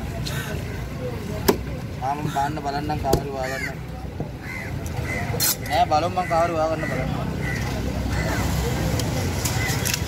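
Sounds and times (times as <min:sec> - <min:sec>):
faint voices: 0:00.0 - 0:10.0
street noise hum: 0:00.0 - 0:10.0.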